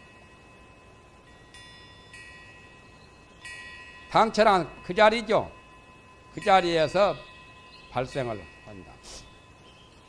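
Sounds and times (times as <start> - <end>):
faint steady tone: 0.0 - 10.0
faint wind chime tones: 0.0 - 10.0.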